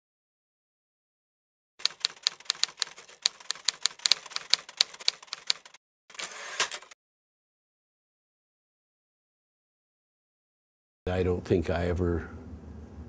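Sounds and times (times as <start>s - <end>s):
rapid typing clicks: 1.8s - 5.8s.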